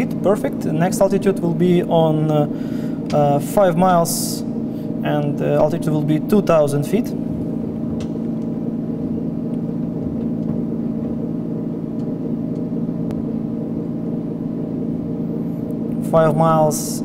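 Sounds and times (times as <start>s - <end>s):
piston aircraft engine drone: 0.0s - 17.0s.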